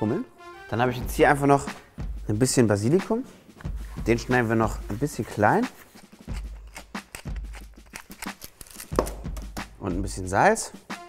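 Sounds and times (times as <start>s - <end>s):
pepper mill grinding: 5.8s - 9.2s.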